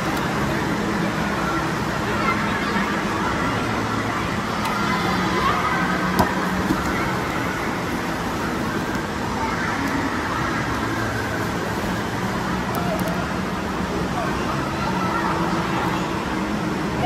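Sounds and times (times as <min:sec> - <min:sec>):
water splashing and running: 0:00.0 - 0:13.6
low constant hum: 0:00.0 - 0:17.0.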